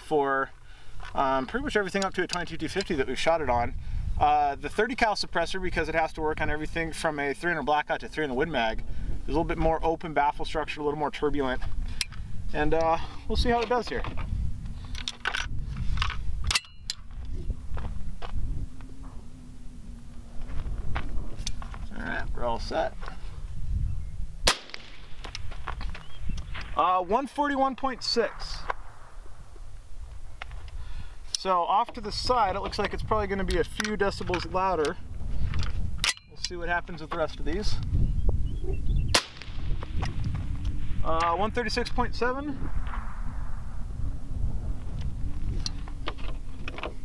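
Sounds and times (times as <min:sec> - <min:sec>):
wind rumbling on microphone: 0:00.0 - 0:47.0
rifle metallic clicks and clanks: 0:01.0 - 0:03.0, 0:12.0 - 0:17.1, 0:30.4 - 0:37.3
suppressed rifle shot: 0:24.4 - 0:25.5, 0:39.1 - 0:40.2, 0:42.6 - 0:44.0.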